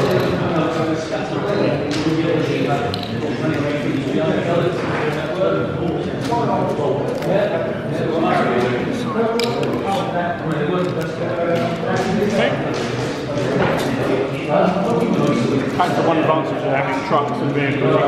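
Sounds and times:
indistinct chatter of voices: 0.0s - 18.0s.

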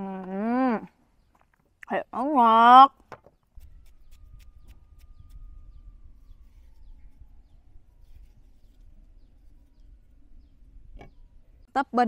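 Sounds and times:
faint bird chirps: 3.5s - 11.9s.

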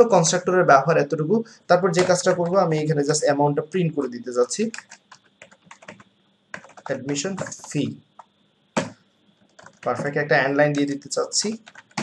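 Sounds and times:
typing on keyboard: 4.6s - 10.1s, 10.7s - 12.0s.

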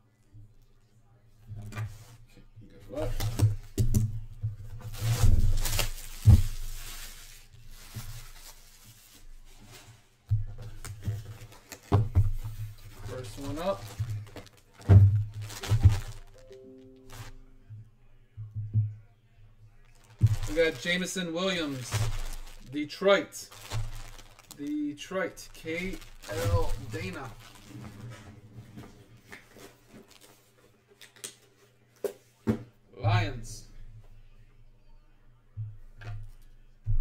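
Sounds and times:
plastic crinkling: 4.9s - 9.9s, 10.8s - 17.4s, 19.8s - 28.3s, 29.3s - 31.4s
background music: 15.5s - 17.7s.

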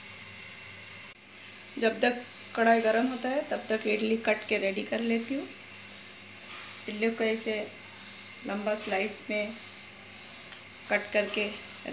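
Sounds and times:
gas stove burner hissing: 0.0s - 11.9s.

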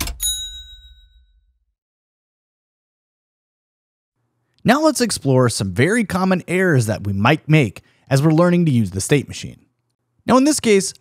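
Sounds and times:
bright bell-like ding: 0.0s - 1.5s.

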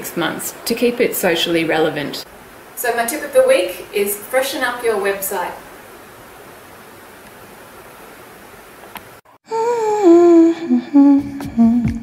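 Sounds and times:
person humming a tune: 9.4s - 12.0s.

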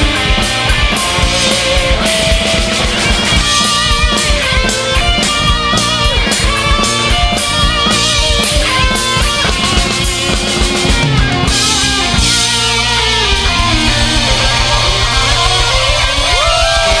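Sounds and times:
pop-punk band playing: 0.0s - 17.0s.

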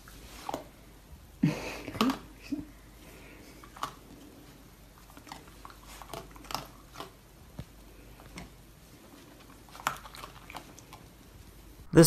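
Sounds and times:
raccoon chewing: 0.0s - 11.9s.

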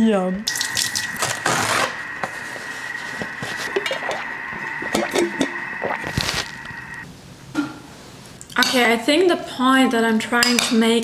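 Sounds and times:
tap water running: 0.4s - 7.0s.

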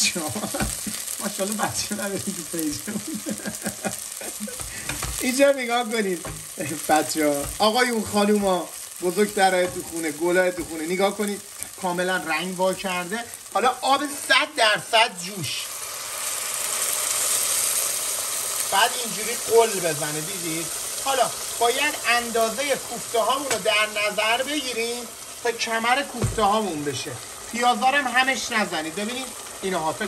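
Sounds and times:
water hissing in hot sauce: 0.0s - 14.1s, 14.9s - 23.5s
vegetables sizzling in oil: 0.0s - 30.0s
spatula stirring in pot: 4.1s - 5.2s.

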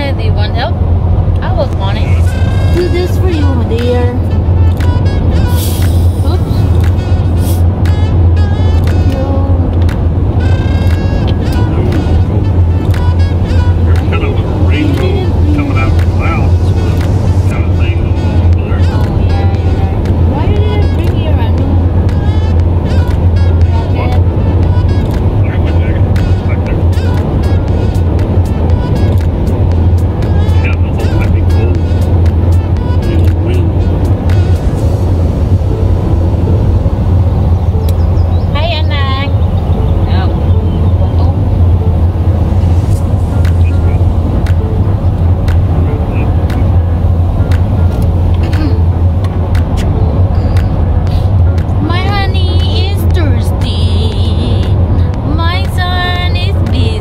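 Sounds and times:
voices: 0.0s - 0.8s, 1.4s - 29.5s, 30.2s - 34.7s, 37.8s - 57.0s
car cabin drone at highway speed: 0.0s - 57.0s
music: 1.4s - 57.0s.

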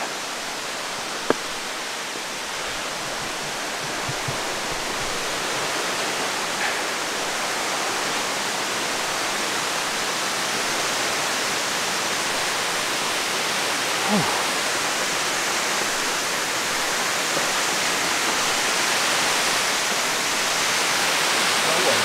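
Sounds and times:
rush of falling water: 0.0s - 22.0s.

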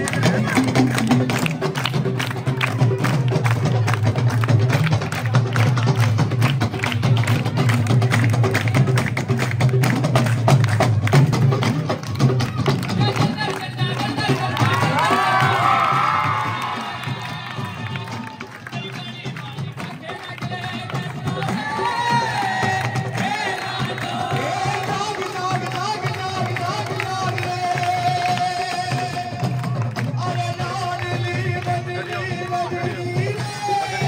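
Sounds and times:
hand-clapping: 0.0s - 32.6s
hand drums rapid rhythm: 0.0s - 34.0s
voices singing: 18.8s - 26.5s.

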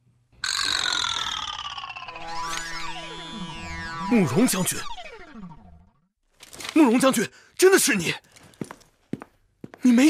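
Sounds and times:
cartoon tone sliding down: 0.4s - 6.0s.

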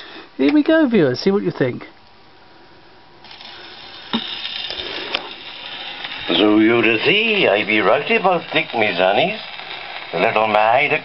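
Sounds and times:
record surface hiss and crackle: 0.0s - 11.0s.

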